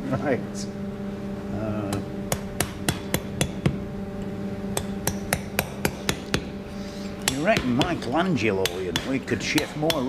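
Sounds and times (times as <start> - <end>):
mallet striking steel chisel: 1.9 - 3.8, 4.8 - 6.5, 7.2 - 10.0.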